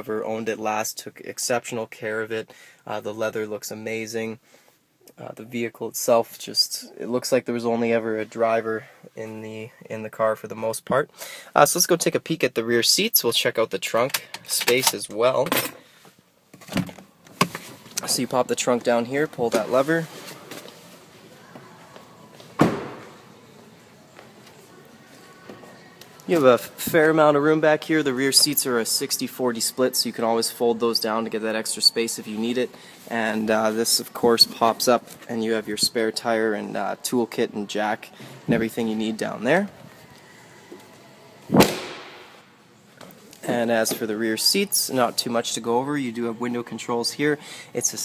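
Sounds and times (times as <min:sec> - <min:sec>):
car door shutting: 0:22.6 - 0:23.1.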